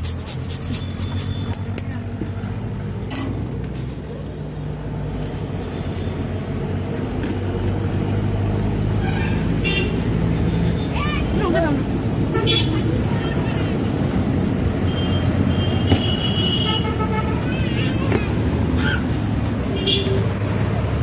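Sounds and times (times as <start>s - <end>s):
grater scraping: 0.0s - 1.4s
road traffic hum: 0.0s - 21.0s.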